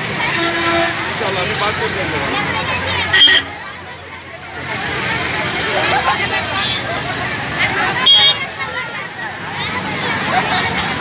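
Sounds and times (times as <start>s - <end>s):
crowd talking: 0.0s - 11.0s
street traffic: 0.0s - 11.0s
short horn beep: 3.1s - 3.5s.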